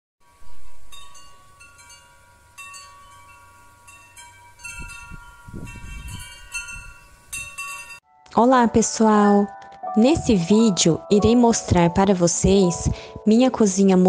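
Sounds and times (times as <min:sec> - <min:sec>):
metal tube wind chime ringing: 0:00.2 - 0:08.0.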